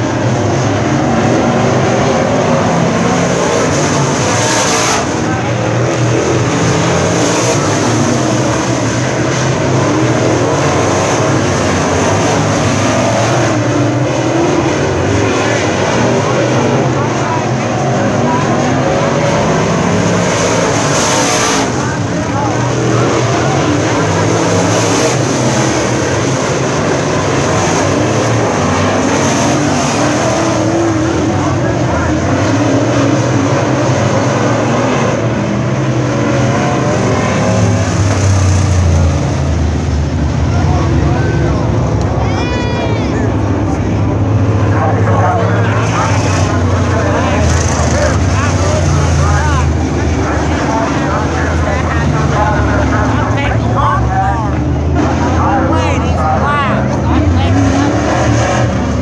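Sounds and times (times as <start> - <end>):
race car engines roaring: 0.0 - 59.0.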